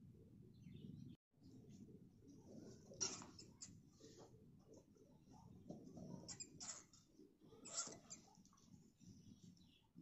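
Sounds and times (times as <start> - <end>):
mouse squeaking: 6.3 - 7.0, 7.6 - 8.3.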